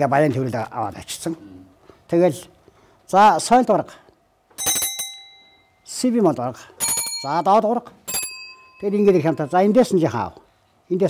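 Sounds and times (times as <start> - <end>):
metal hand bell ringing: 4.6 - 5.9, 6.8 - 9.8.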